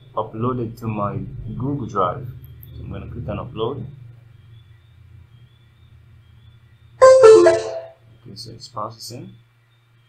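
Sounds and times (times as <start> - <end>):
piano-like chime: 7.0 - 7.9.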